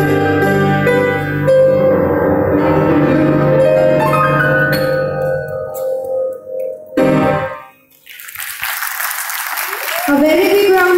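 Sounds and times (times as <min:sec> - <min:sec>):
audience applause: 0:07.9 - 0:10.9.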